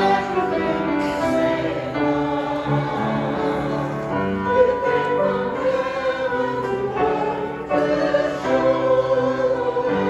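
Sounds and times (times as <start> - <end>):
congregation singing a hymn: 0.0 - 10.0
upright piano: 0.0 - 10.0.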